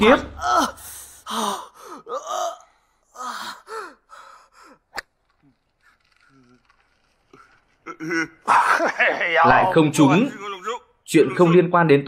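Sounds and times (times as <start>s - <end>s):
person gasping and whimpering: 0.5s - 4.8s.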